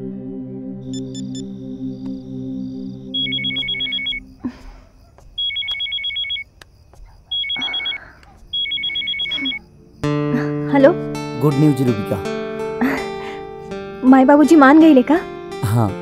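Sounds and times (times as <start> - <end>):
mobile phone ringing: 0.9 - 1.4, 3.2 - 4.2, 5.4 - 6.5, 7.3 - 9.7.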